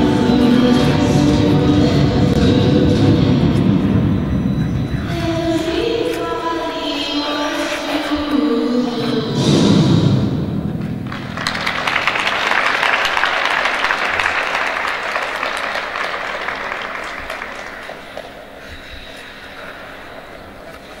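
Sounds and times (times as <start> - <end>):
audience applause: 11.0 - 18.6.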